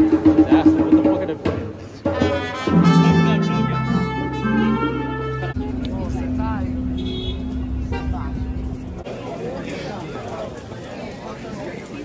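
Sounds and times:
crowded room chatter: 0:00.0 - 0:12.0
voices: 0:02.7 - 0:12.0
vehicle engine humming: 0:03.1 - 0:09.1.

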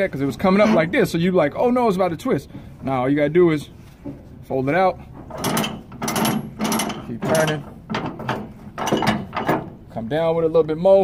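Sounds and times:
ratchet winch clicking: 0:05.3 - 0:09.6.

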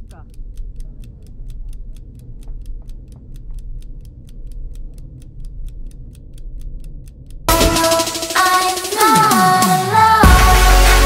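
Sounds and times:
clock ticking: 0:00.0 - 0:10.0.

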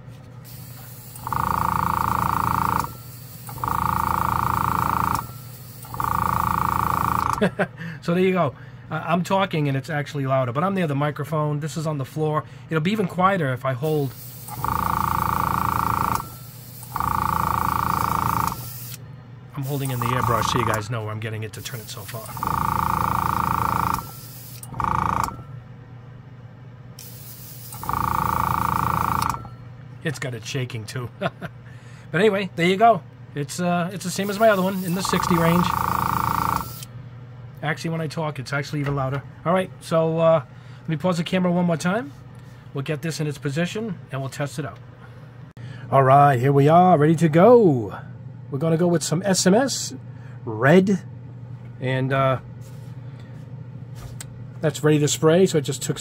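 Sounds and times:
air compressor humming: 0:00.0 - 0:08.1, 0:13.8 - 0:25.9, 0:26.9 - 0:30.3, 0:33.4 - 0:37.0
compressor low hum: 0:00.0 - 0:56.0.

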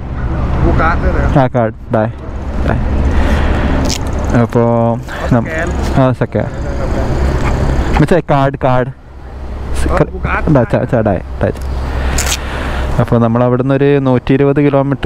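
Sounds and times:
vehicle engine rumbling: 0:00.0 - 0:15.0.

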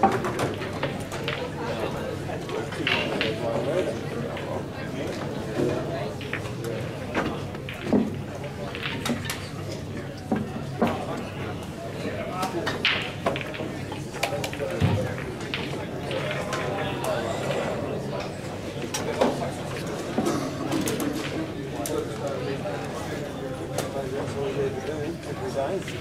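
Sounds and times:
pool balls clicking: 0:00.0 - 0:11.6, 0:12.3 - 0:22.9
crowd chatter in hall: 0:00.0 - 0:26.0.

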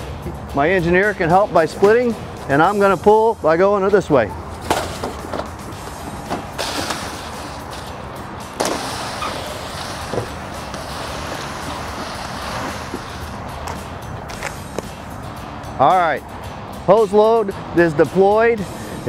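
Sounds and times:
fire hose scraping across concrete: 0:04.6 - 0:07.9, 0:08.6 - 0:13.5.

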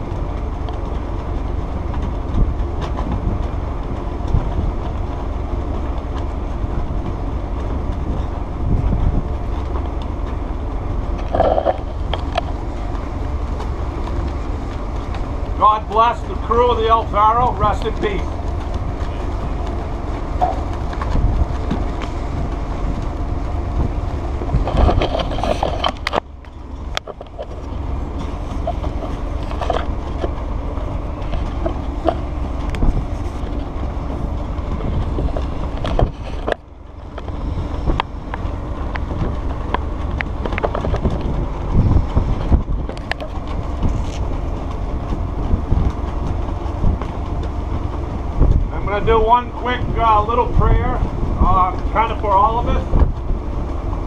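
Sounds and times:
low rumble of ship: 0:00.0 - 0:54.0
wind buffeting microphone: 0:00.0 - 0:54.0.

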